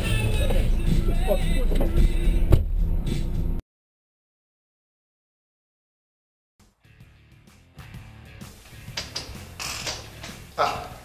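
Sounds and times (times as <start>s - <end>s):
car idling: 0.0s - 3.6s
car door shutting: 1.6s - 2.9s.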